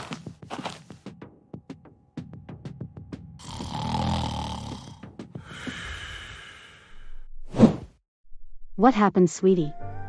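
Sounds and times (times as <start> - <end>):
man snoring: 3.4 - 7.1
breathy exhale: 5.4 - 7.3.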